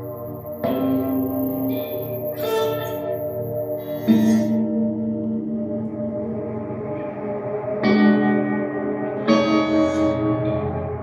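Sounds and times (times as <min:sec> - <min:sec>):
layered sustained guitar tones: 0:00.0 - 0:11.0.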